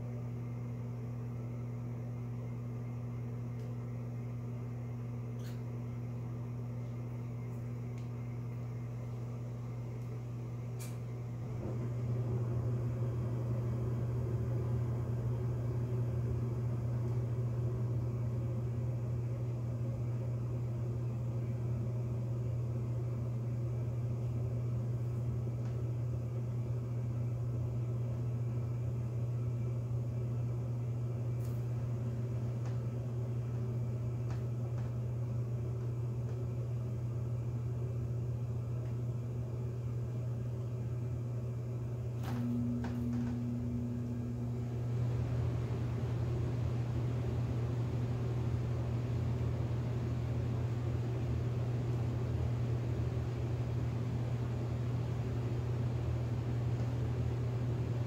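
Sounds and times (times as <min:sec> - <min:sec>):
steady low hum: 0:00.0 - 0:58.0.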